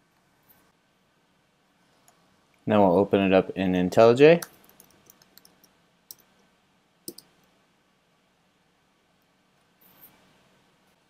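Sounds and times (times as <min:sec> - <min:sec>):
computer keys clicking: 0:04.4 - 0:06.3, 0:07.1 - 0:07.3
mouse click: 0:07.1 - 0:07.3.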